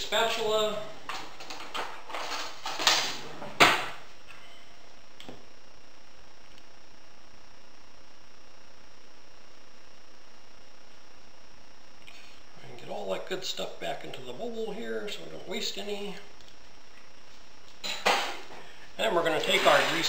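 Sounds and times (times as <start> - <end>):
utensils rummaged through: 1.1 - 3.2.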